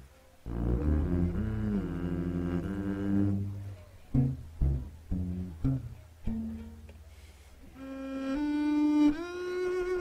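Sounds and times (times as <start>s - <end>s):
bowed double bass note: 0.0s - 6.9s.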